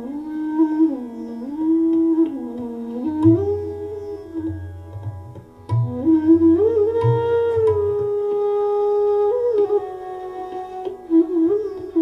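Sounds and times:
bamboo flute melody: 0.0 - 12.0
low tabla strokes: 1.6 - 12.0.

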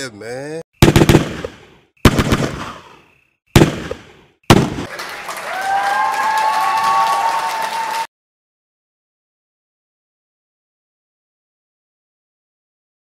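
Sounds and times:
loud echoing bangs: 0.8 - 2.9, 3.5 - 4.9
crowd cheering and applause: 4.8 - 8.1.

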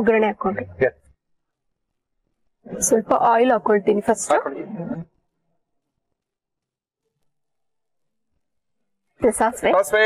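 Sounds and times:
woman speaking: 0.0 - 0.7, 2.7 - 5.1, 9.2 - 10.0.

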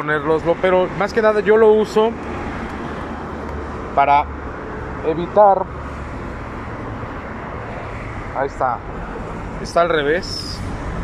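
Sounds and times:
cars passing on road: 0.0 - 11.0.

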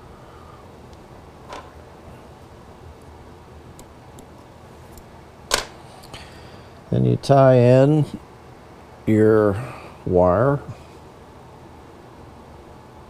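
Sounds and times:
faint room hum: 0.0 - 13.0.

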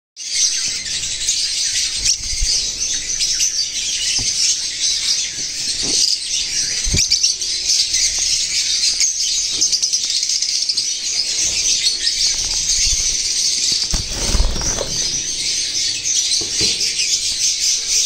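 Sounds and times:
birds chirping: 0.2 - 18.0.

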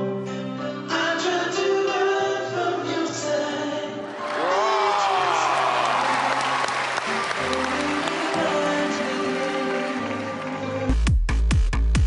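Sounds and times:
audience applauding: 4.1 - 10.6.

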